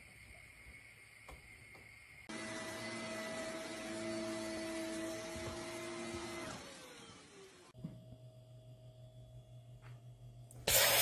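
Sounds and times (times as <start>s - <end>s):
electric motor whirring: 2.3s - 7.7s.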